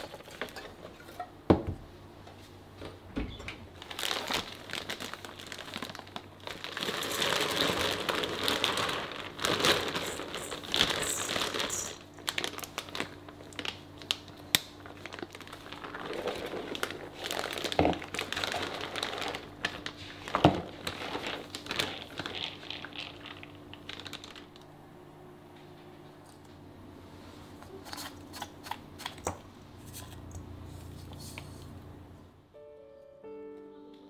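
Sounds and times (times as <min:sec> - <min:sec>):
plastic bag crinkling: 0:03.8 - 0:24.8.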